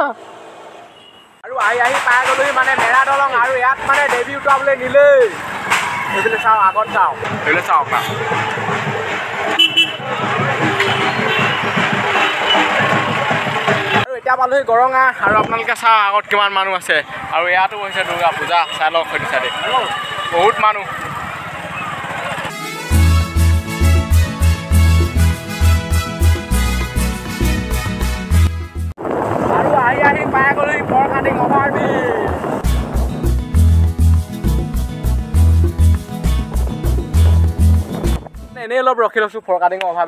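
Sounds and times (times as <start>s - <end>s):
slow road traffic: 0.0s - 27.4s, 31.4s - 40.0s
vehicle horn toots: 0.9s - 1.4s, 9.5s - 13.0s, 17.8s - 20.9s
man talking: 1.4s - 5.4s, 29.6s - 32.4s, 38.5s - 40.0s
wind buffeting microphone: 15.2s - 15.8s, 29.0s - 33.3s.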